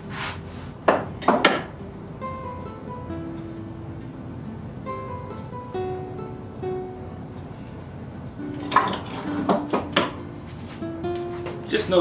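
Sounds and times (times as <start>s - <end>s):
quiet guitar music: 0.0s - 12.0s.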